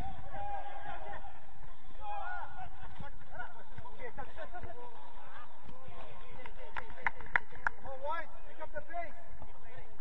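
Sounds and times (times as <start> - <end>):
players shouting: 0.0 - 3.2.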